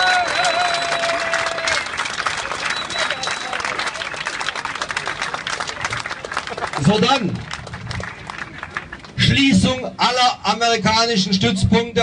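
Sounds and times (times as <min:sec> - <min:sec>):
long held shout: 0:00.0 - 0:01.9
crowd applauding: 0:00.0 - 0:09.3.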